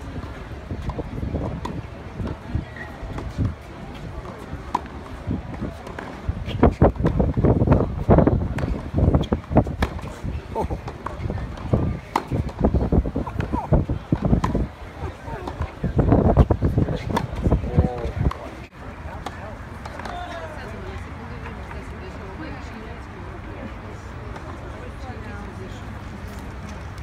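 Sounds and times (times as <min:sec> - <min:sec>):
people talking: 0:00.0 - 0:27.0
tennis balls struck by racquets: 0:00.2 - 0:20.2.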